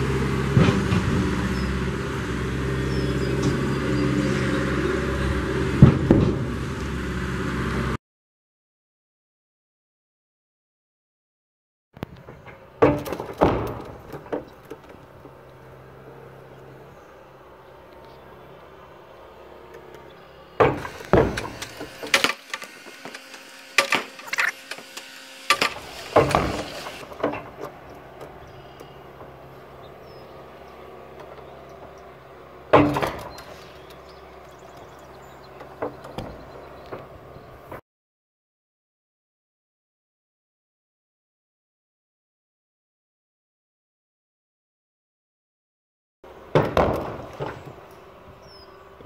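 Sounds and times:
diesel excavator running: 0.0s - 8.0s, 12.0s - 37.8s, 46.3s - 49.0s.

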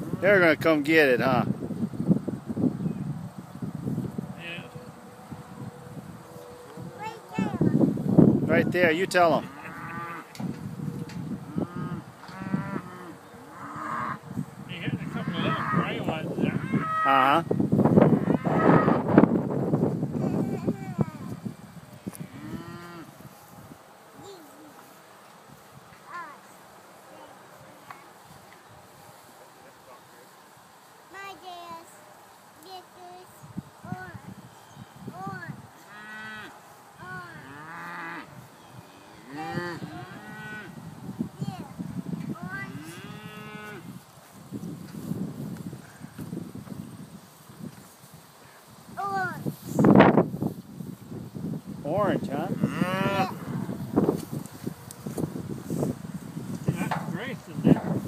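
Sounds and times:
cattle mooing: 9.4s - 10.4s, 11.5s - 14.2s, 15.0s - 17.2s, 18.2s - 19.0s, 39.0s - 40.8s, 52.6s - 53.8s.

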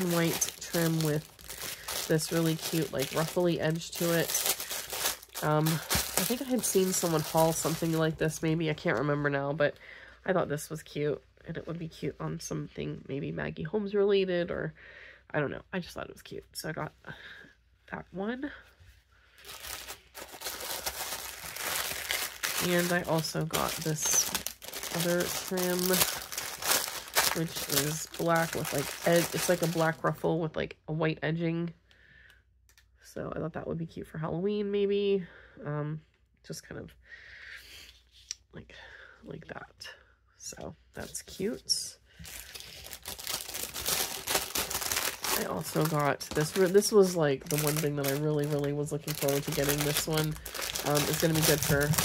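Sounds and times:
plastic bags crinkling: 0.0s - 8.4s, 19.4s - 30.2s, 42.2s - 52.0s.

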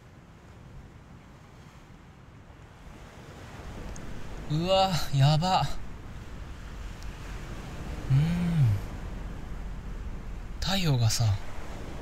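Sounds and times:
ocean waves washing onto beach: 0.0s - 12.0s.

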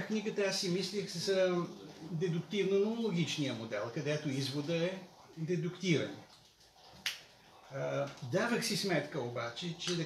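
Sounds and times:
man speaking: 0.0s - 6.3s, 7.5s - 10.0s.

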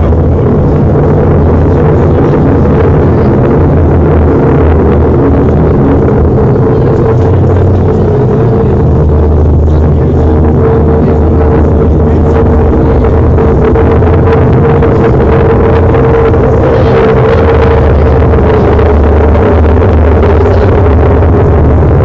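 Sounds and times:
loud low drone: 0.0s - 22.0s.

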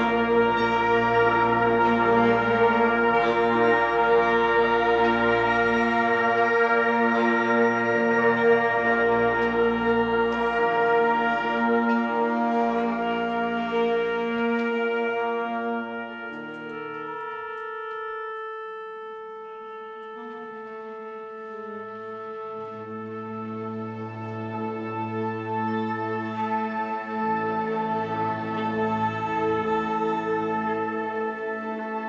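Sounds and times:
wind band playing slow chords: 0.0s - 32.0s.

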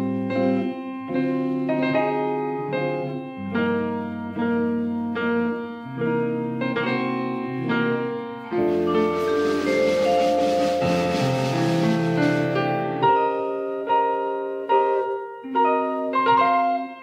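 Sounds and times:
grand piano jazz chords: 0.0s - 15.0s
low piano bass notes: 8.5s - 13.1s.

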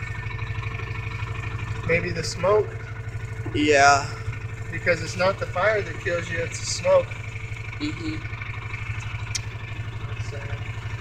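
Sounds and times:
vehicle engine throbbing: 0.0s - 11.0s.

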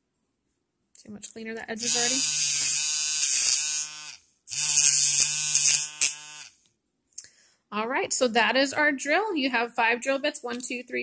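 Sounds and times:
electric nail drill grinding: 1.8s - 6.6s.

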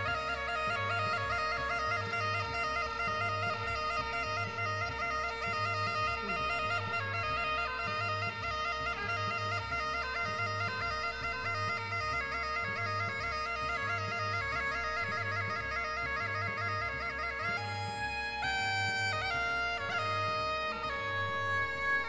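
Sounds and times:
bagpipe melody over drone: 0.0s - 22.0s.

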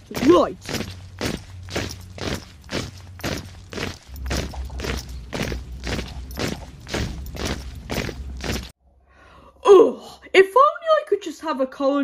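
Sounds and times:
marching footsteps: 0.0s - 8.7s.

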